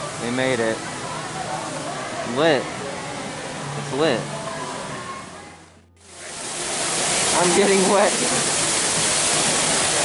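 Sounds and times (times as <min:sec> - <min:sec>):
faint lobby background: 0:00.0 - 0:08.7
indoor waterfall rushing: 0:06.0 - 0:10.0.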